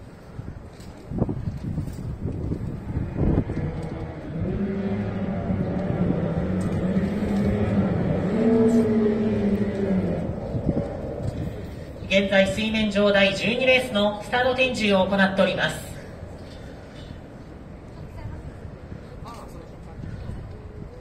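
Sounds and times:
outboard boat motors droning: 3.8 - 11.9.

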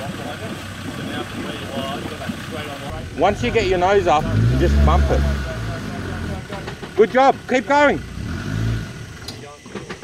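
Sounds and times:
diesel engine pulling under load: 0.0 - 10.0.

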